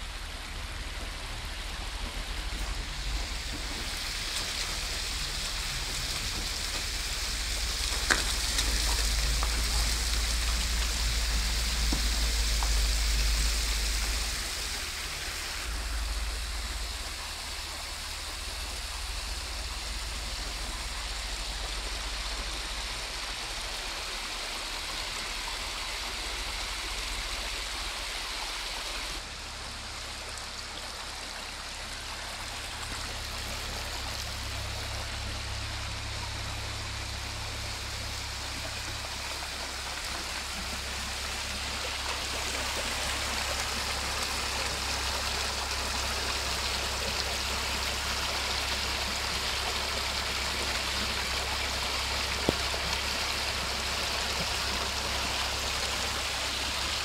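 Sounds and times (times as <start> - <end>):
floodwater rushing and splashing: 0.0 - 57.0.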